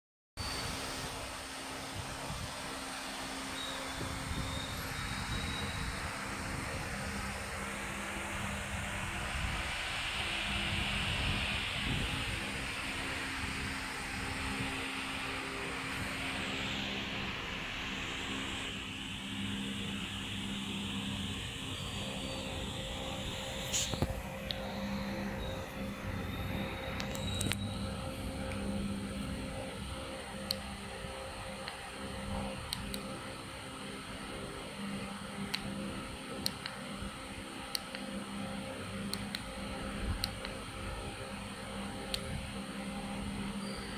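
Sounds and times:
electric hub motor spinning: 0:00.4 - 0:43.9
high whine: 0:00.4 - 0:43.9
low machine hum: 0:00.4 - 0:43.9
sharp clicks: 0:26.9 - 0:27.7.

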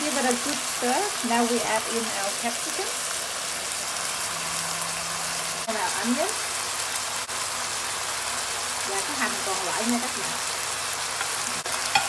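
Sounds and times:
food sizzling in frying pan: 0:00.0 - 0:12.0.

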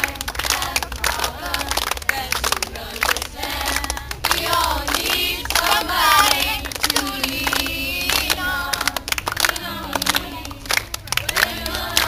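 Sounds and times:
group of voices singing: 0:00.0 - 0:12.0
hands clapping: 0:00.0 - 0:12.0.

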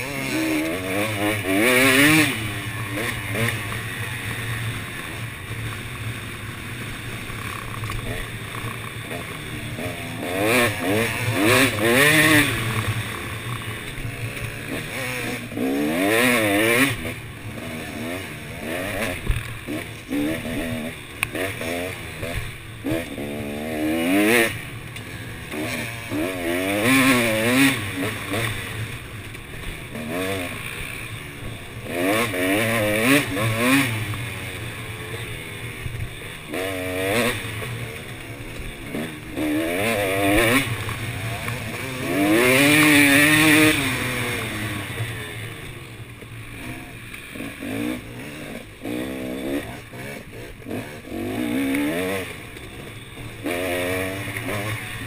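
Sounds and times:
dirt bike engine revving: 0:00.0 - 0:55.0.

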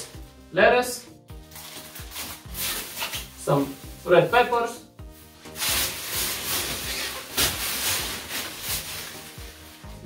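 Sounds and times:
background music: 0:00.0 - 0:10.0
plastic bag crinkling: 0:05.5 - 0:09.8.

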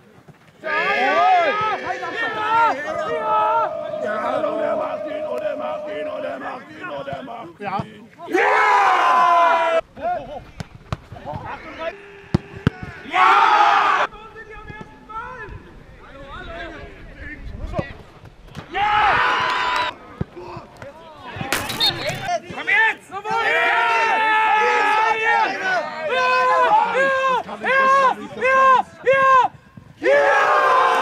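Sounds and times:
men shouting and cheering: 0:00.6 - 0:07.5, 0:08.2 - 0:09.8, 0:11.9 - 0:14.1, 0:22.2 - 0:31.0.

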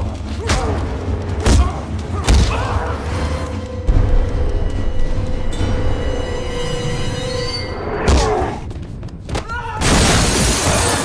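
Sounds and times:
shrill screeching tone: 0:06.2 - 0:08.0.

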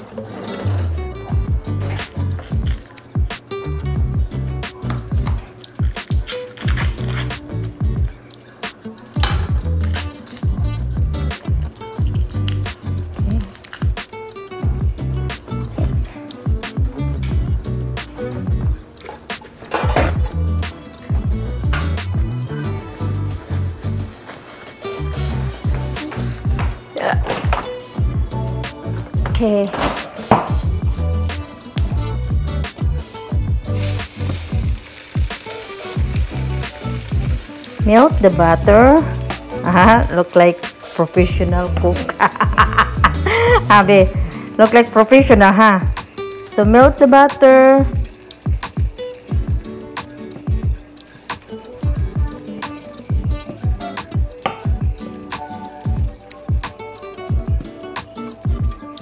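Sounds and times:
background music with steady beat: 0:00.0 - 0:59.0
butter sizzling in frying pan: 0:31.7 - 0:41.0.

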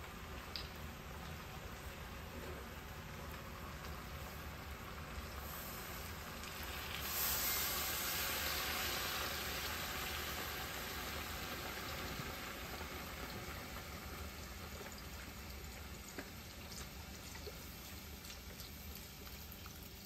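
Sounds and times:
broth sizzling in hot pot: 0:00.0 - 0:20.0.

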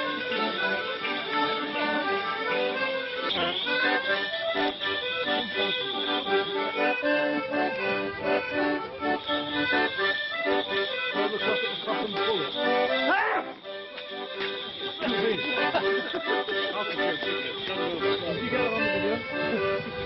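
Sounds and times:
accordions playing dance tune: 0:00.0 - 0:20.0
fiddle: 0:00.0 - 0:20.0.

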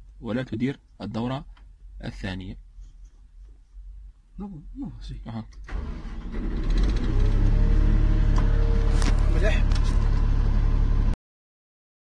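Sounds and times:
crane engine starting and running: 0:05.7 - 0:11.2.

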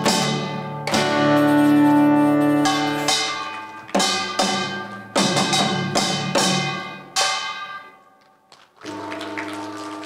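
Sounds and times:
percussion drums hitting: 0:00.0 - 0:08.0.

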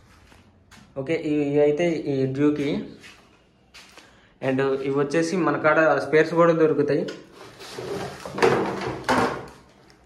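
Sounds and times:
plastic panels scraping and rustling: 0:07.3 - 0:09.8.

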